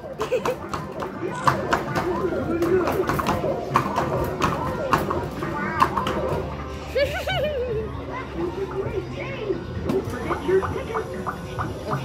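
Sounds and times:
arcade music: 0.0 - 12.0
mallet hitting plastic targets: 0.6 - 5.2.

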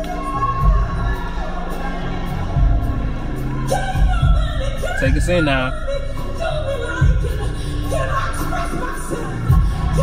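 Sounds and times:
crowd noise: 0.0 - 10.0
people singing: 0.0 - 10.0.

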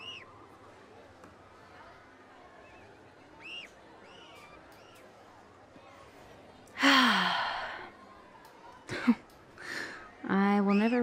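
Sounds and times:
woman sighing: 6.8 - 7.9.

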